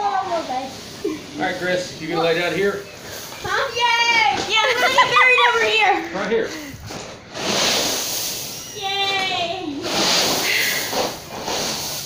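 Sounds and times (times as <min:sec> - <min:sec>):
corn kernels pouring: 0:07.4 - 0:08.6, 0:09.9 - 0:12.0.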